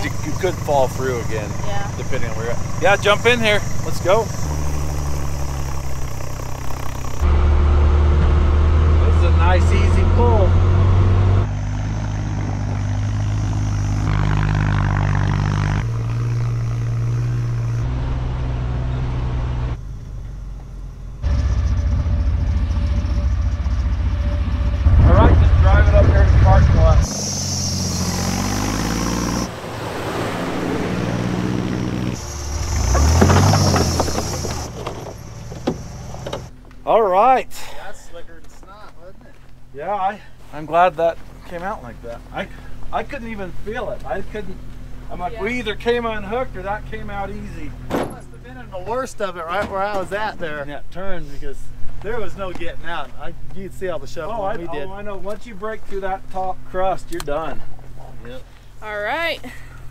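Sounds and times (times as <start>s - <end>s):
snow vehicle engine running: 0.0s - 37.0s, 40.5s - 50.6s.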